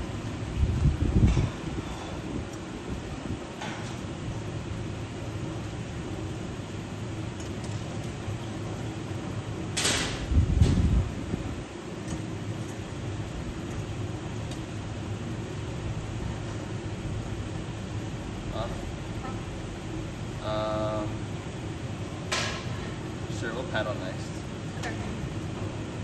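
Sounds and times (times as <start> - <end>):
low mechanical drone: 0.0 - 26.0.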